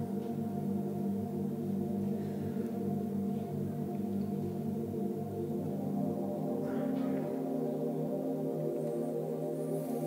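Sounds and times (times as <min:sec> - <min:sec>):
sustained keyboard pad chord: 0:00.0 - 0:10.0.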